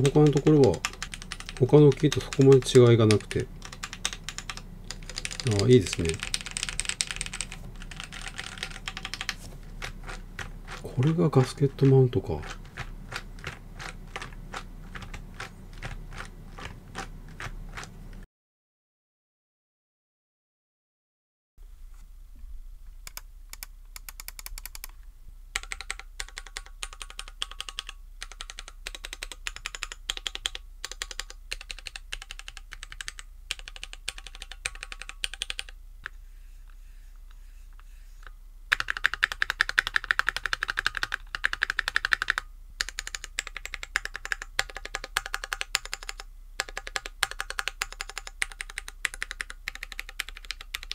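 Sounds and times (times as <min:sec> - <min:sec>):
fast mechanical keyboard typing: 0:00.0 - 0:18.2, 0:23.1 - 0:24.9, 0:25.5 - 0:35.8, 0:38.7 - 0:50.9.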